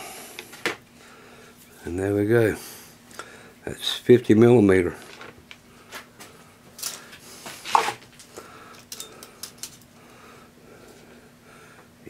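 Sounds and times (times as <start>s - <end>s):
metal tools clicking and clinking: 8.7s - 9.9s.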